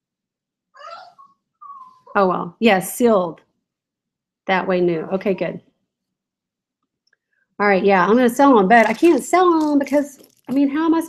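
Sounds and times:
dog whining: 0.8s - 2.2s.

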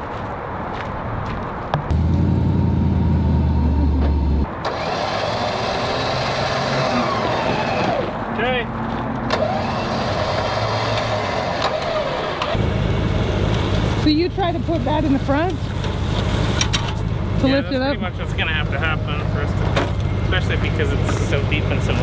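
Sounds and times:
truck engine humming: 1.7s - 22.0s.

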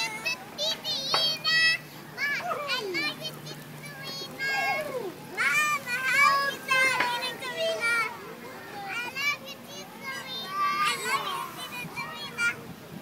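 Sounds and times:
young children calling out and chattering: 0.0s - 13.0s.

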